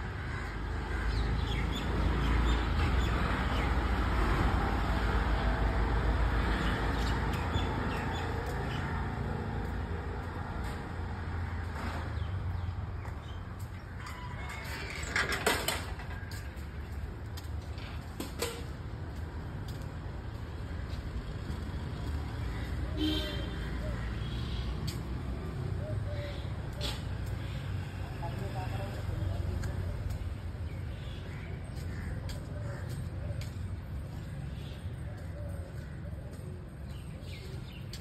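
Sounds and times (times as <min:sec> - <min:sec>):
traffic rumble: 0:00.0 - 0:38.0.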